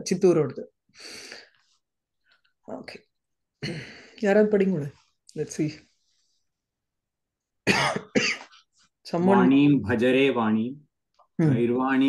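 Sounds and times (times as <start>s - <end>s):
woman coughing: 7.6s - 8.5s.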